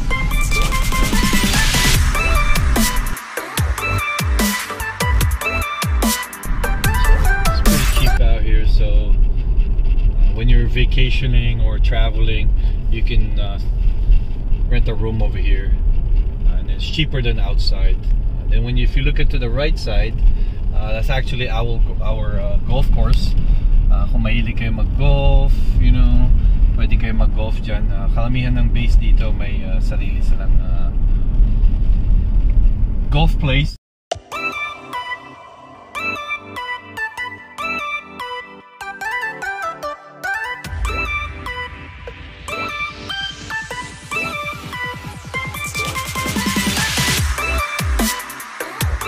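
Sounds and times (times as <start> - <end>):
car driving rumble inside cabin: 6.6 - 33.6
man talking: 6.9 - 9.2, 10.4 - 13.7, 14.7 - 15.8, 16.5 - 20.2, 20.8 - 31.0.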